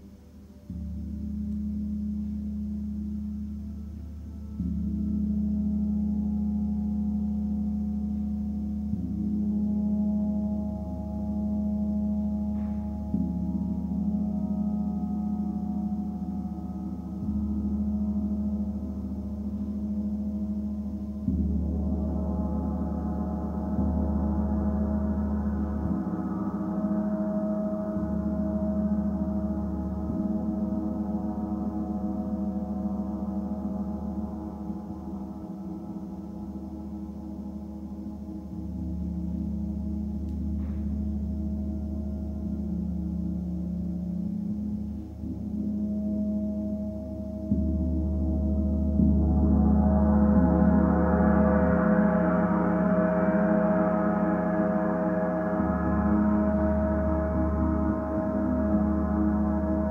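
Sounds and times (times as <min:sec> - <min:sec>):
deep gong humming: 0:00.6 - 0:59.9.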